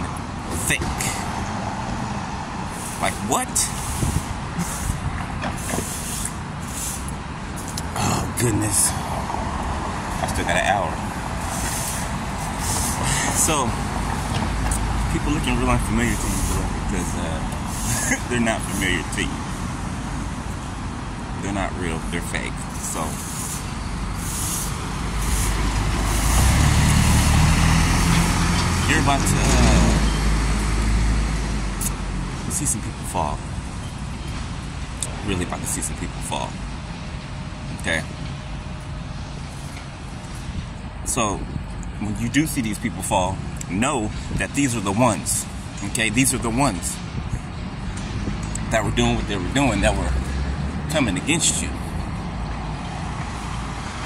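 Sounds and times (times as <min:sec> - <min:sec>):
heavy vehicle engine rumble: 0:00.0 - 0:54.0
traffic noise: 0:00.0 - 0:54.0.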